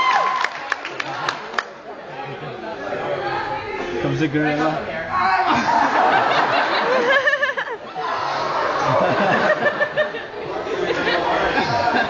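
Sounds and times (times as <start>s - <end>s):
crowd of students chattering: 0.8s - 12.0s.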